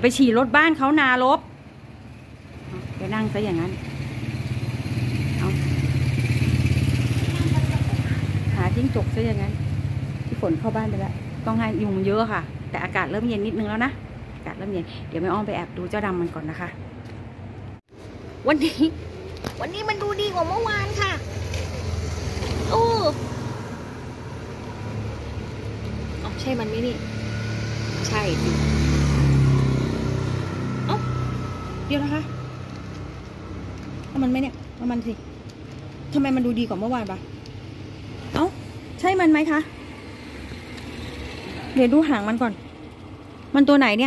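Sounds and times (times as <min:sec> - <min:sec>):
vehicle engine running: 0:02.4 - 0:13.0.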